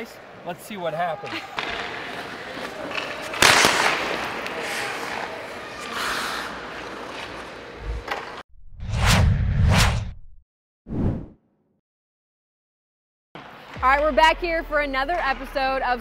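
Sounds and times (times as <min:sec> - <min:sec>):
hockey puck shot crack: 0:02.9 - 0:05.3
whooshes: 0:07.8 - 0:11.3.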